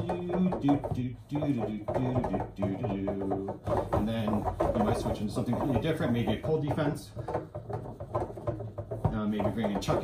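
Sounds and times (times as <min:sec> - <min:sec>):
foosball rods knocking and clacking: 0:00.0 - 0:10.0.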